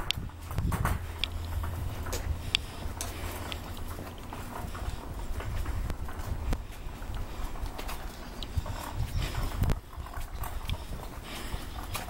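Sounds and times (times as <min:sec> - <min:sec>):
cart wheels rolling on concrete: 0:00.0 - 0:12.0.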